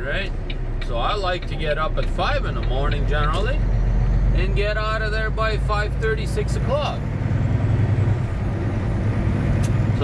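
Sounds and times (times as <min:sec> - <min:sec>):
road noise: 0:00.0 - 0:10.0
truck diesel engine drone: 0:00.0 - 0:10.0.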